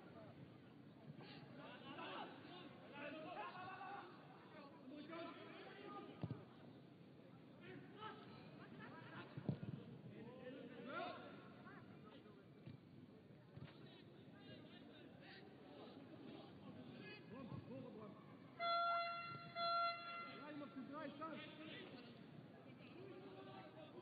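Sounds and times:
horn blasts: 18.6s - 20.6s.

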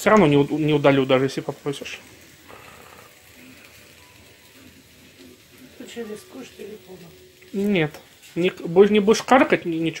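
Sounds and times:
pancake frying hiss: 0.0s - 10.0s.

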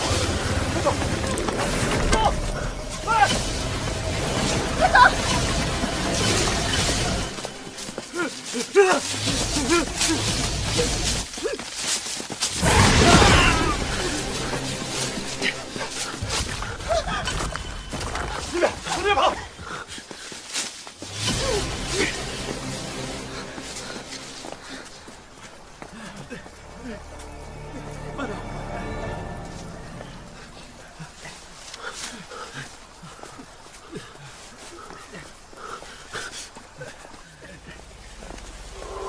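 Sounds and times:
rustling leaves and branches: 0.0s - 39.0s
quick footfalls: 7.4s - 21.2s.

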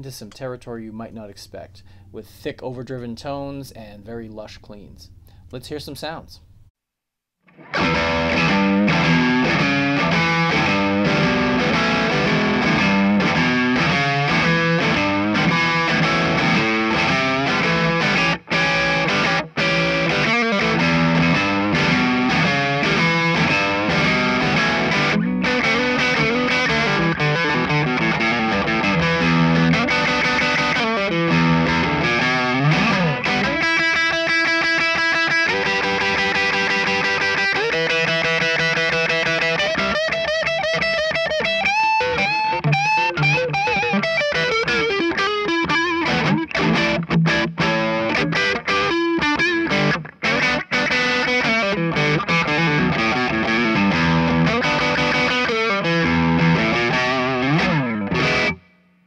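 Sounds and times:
electric guitar through amplifier: 7.5s - 59.0s.

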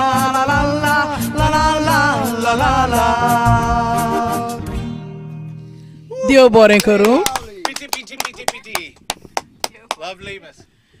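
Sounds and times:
people clapping: 6.7s - 10.2s.

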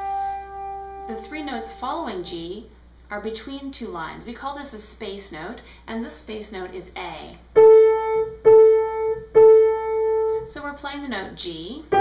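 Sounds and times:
piano note repeated: 0.0s - 1.8s, 7.6s - 10.5s.

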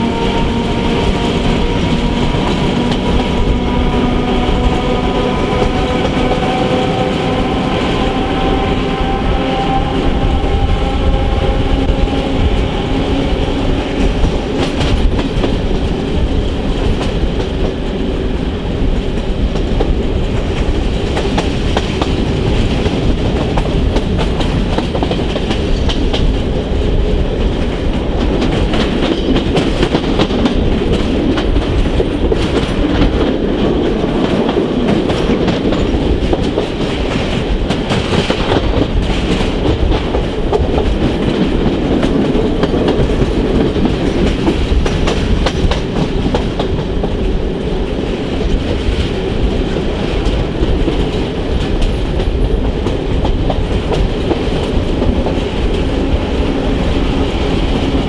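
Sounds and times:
train wheels and engine rumbling: 0.0s - 58.0s
wheels clicking over rail joints: 18.8s - 58.0s.

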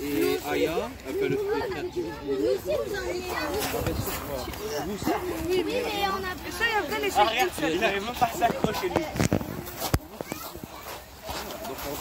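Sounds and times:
young people talking: 0.0s - 12.0s.

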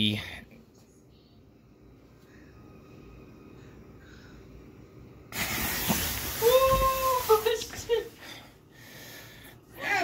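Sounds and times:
person breathing hard: 8.2s - 9.8s.

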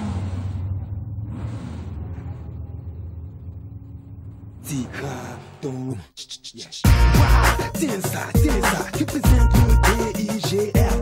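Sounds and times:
low rumble: 0.0s - 5.3s.

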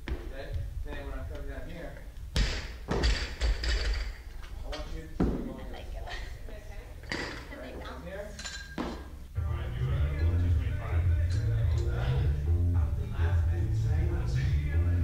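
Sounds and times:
barbell thudding on rubber floor: 2.3s - 4.0s
people talking: 9.4s - 15.0s.

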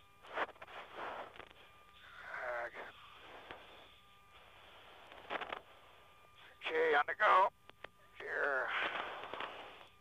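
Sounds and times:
faint radio static hiss: 0.0s - 10.0s.

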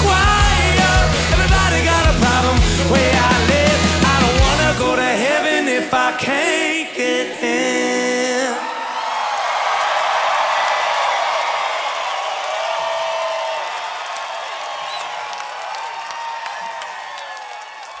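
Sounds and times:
rock band chord: 0.0s - 5.0s
crowd cheering and applauding: 0.0s - 5.7s, 7.4s - 18.0s.

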